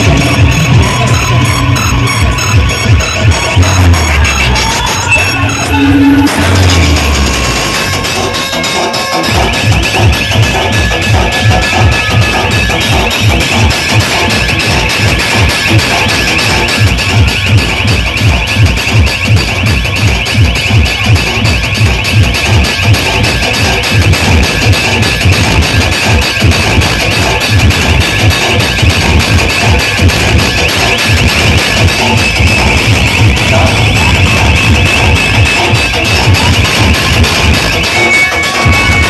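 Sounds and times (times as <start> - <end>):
loud dance music with heavy bass: 0.0 - 39.0.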